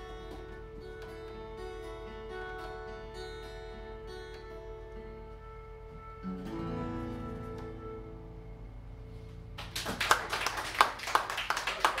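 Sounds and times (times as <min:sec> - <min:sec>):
audience applauding: 0:09.6 - 0:12.0
individual hand claps: 0:09.6 - 0:12.0.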